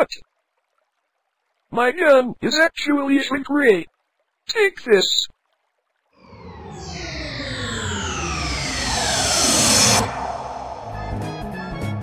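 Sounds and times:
synthesized downward tone sweep: 6.2 - 12.0.

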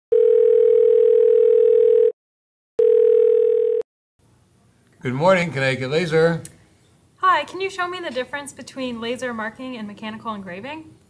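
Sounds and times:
telephone ringback tone: 0.1 - 2.2, 2.8 - 3.8.

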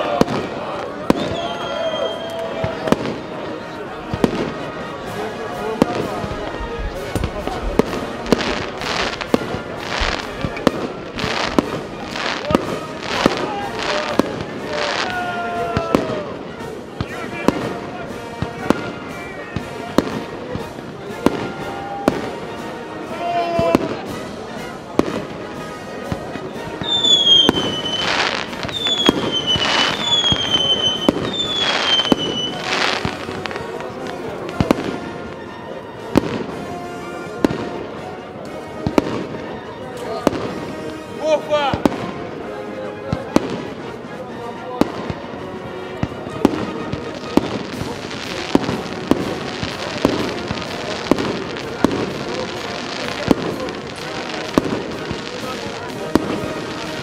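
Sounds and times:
fireworks bangs: 0.0 - 22.7, 23.5 - 36.7, 37.4 - 37.9, 38.8 - 39.5, 40.1 - 42.3, 46.0 - 57.0
whistling fireworks: 0.0 - 22.7, 23.4 - 37.8, 38.8 - 39.6, 46.0 - 57.0.

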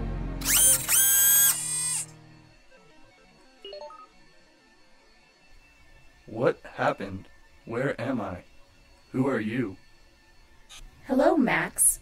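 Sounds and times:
electronic robot power-up tone: 0.4 - 2.1.

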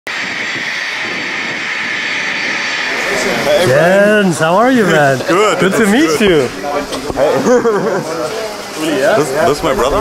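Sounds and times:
jet engines whining: 0.1 - 10.0.

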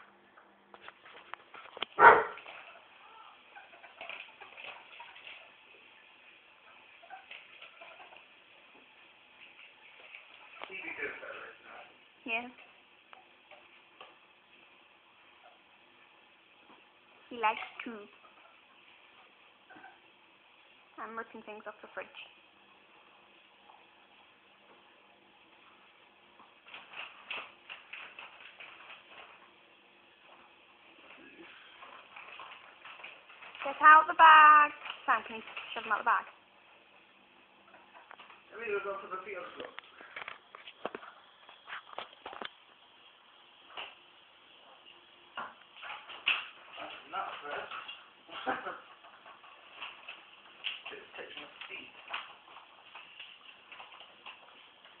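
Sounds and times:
ferrets ticking and scuffling: 0.7 - 15.8, 17.0 - 21.6, 25.4 - 55.0.

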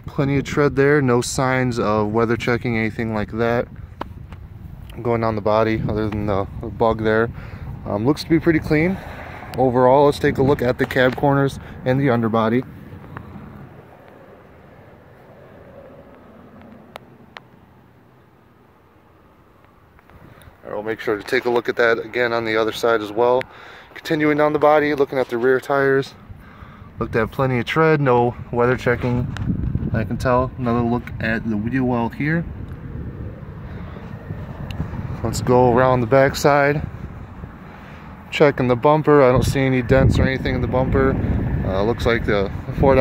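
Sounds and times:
faint outdoor background noise: 0.0 - 43.0.

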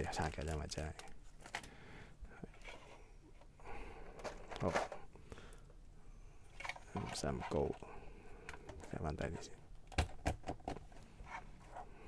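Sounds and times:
plastic bags crinkling: 0.0 - 1.7
plastic parts clicking: 0.2 - 1.7.

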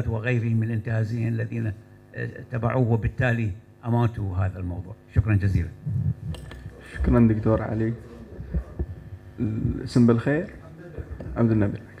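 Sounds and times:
man speaking into a microphone: 0.0 - 6.0, 6.6 - 12.0.

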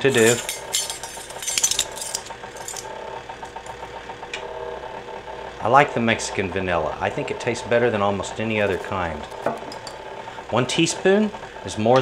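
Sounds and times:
light metallic clinks and rattles: 0.0 - 2.9, 8.7 - 10.0
stand mixer running: 0.0 - 12.0.

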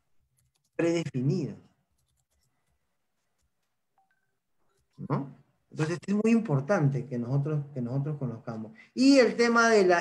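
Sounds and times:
faint electronic beeps: 3.9 - 4.8.

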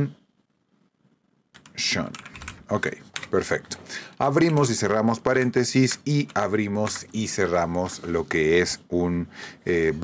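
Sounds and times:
computer keyboard typing: 1.6 - 5.0, 6.0 - 7.3.

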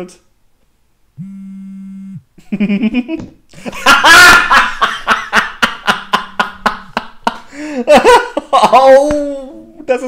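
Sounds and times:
man laughing hard: 2.4 - 9.0.

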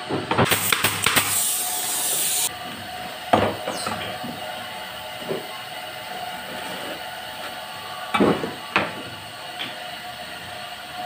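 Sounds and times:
high hiss: 0.5 - 2.5.

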